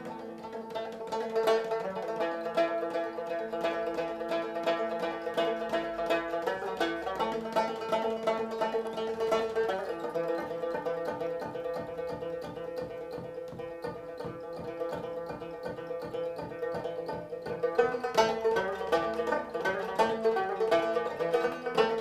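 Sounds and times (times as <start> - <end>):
plucked lute strumming: 0.0 - 22.0.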